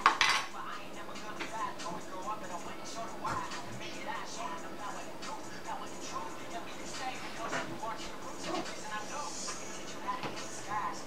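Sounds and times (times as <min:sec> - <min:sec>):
makeup items clattering on table: 0:00.0 - 0:00.5.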